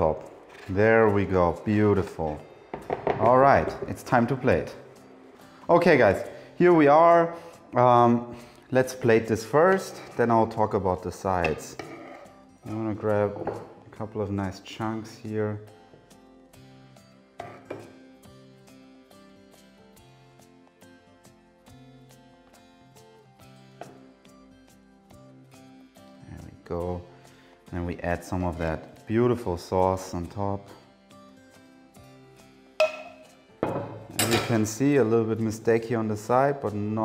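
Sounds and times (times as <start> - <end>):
soft guitar music: 0.0 - 37.0
pan knocking on wooden table: 2.7 - 3.9, 32.8 - 34.1
metal utensils knocking on pan: 32.8 - 34.6.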